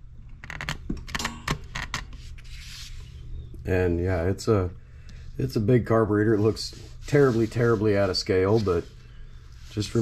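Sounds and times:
rubbing hiss: 0:06.3 - 0:10.0.

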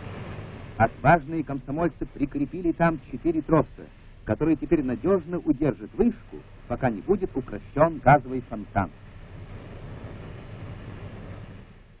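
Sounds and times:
gas gusher rushing with rumble: 0:00.0 - 0:12.0.

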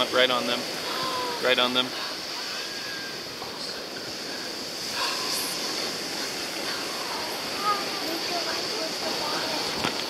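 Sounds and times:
surf hissing: 0:00.0 - 0:10.0.

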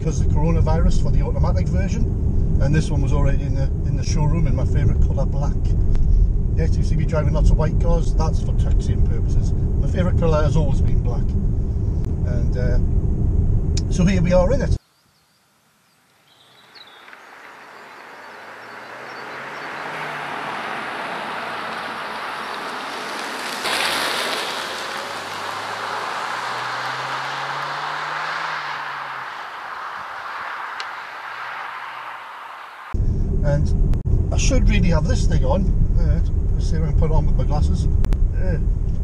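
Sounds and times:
low engine note: 0:00.0 - 0:14.8, 0:17.1 - 0:39.0
road and tyre rush: 0:00.0 - 0:14.9, 0:15.6 - 0:39.0.

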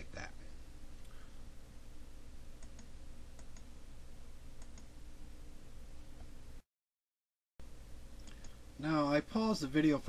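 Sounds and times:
low electrical hum and hiss: 0:00.0 - 0:06.6, 0:07.6 - 0:10.0
computer mouse clicking: 0:02.6 - 0:03.7, 0:04.6 - 0:04.9.

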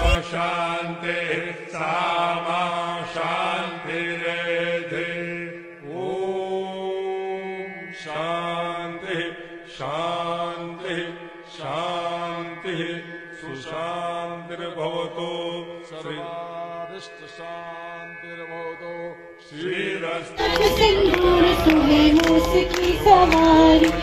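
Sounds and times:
person chanting: 0:00.0 - 0:24.0
steady drone: 0:20.3 - 0:24.0.

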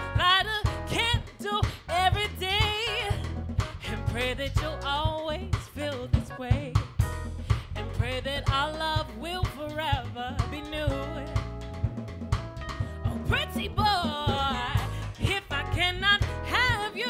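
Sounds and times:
woman singing: 0:00.0 - 0:06.9, 0:07.8 - 0:11.7, 0:12.9 - 0:17.0
drum kit beat: 0:00.0 - 0:17.0
soul band playing: 0:00.0 - 0:17.0.

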